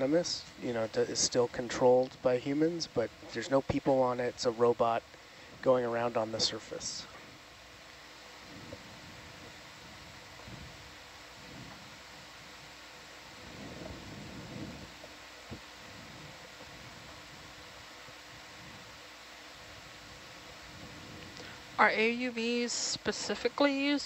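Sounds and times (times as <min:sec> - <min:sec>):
faint fan-like hum: 0:00.0 - 0:24.0
steady hiss: 0:00.0 - 0:24.0
soft low murmurs: 0:08.3 - 0:12.6.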